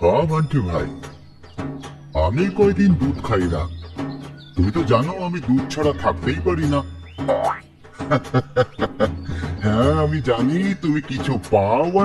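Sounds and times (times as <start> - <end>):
springy cartoon boing: 7.3 - 7.7.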